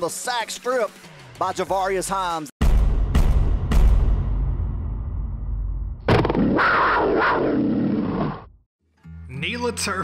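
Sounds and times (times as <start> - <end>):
animal-like roar: 6.1 - 8.5.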